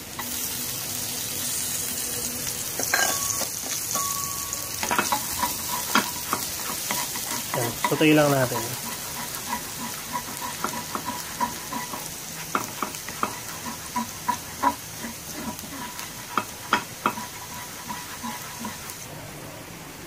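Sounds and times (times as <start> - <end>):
garlic sizzling in hot oil: 0.0 - 19.1
spatula scraping a pan: 2.8 - 19.1.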